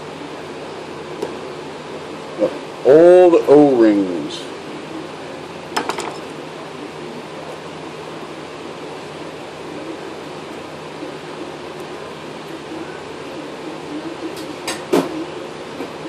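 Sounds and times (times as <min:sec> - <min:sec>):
workshop mechanical hum: 0:00.0 - 0:16.0.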